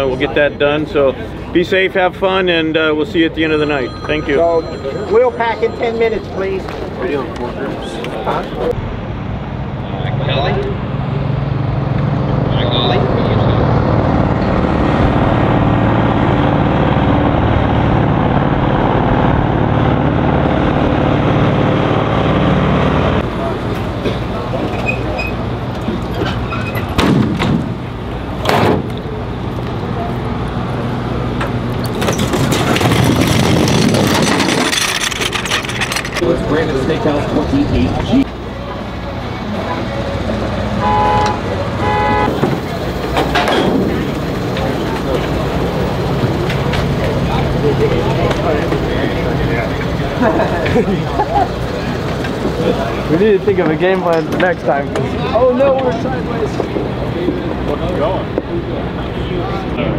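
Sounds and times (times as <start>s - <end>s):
two-tone horn toot: 40.8s - 42.4s.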